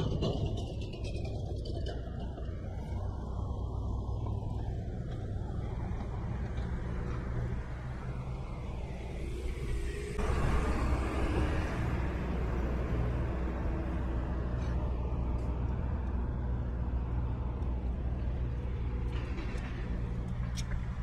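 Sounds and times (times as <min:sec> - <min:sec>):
bus driving past: 0:00.0 - 0:21.0
street traffic rumble: 0:00.0 - 0:21.0.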